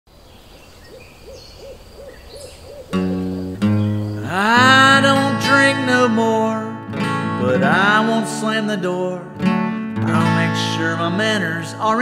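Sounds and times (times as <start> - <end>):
faint birdsong: 0.1 - 5.0
bird hooting: 0.3 - 4.5
acoustic guitar chords: 2.9 - 12.0.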